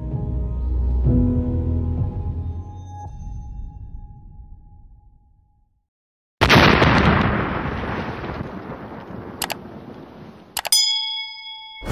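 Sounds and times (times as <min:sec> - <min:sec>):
short clicks: 0:10.6 - 0:10.8
bright ringing ding: 0:10.6 - 0:11.9.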